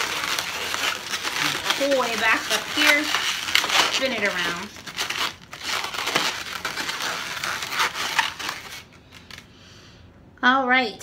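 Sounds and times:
balloons rubbing and scraping: 0.0s - 9.5s.

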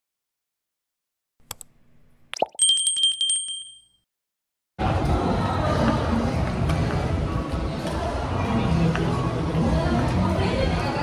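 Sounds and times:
bell ding with trill: 2.6s - 4.0s
busy indoor background noise: 4.8s - 11.0s.

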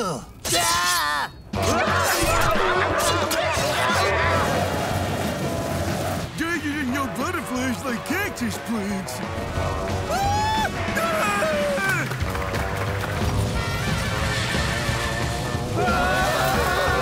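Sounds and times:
cartoon background music: 0.5s - 17.0s.

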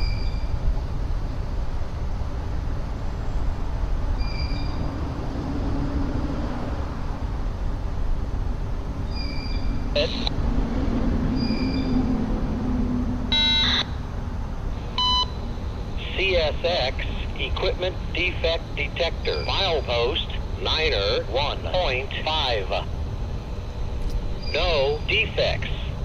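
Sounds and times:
low rumble: 0.5s - 24.5s
scanner radio beeps: 10.0s - 10.3s, 13.3s - 14.0s, 14.9s - 15.4s, 16.0s - 22.9s, 24.4s - 26.0s.

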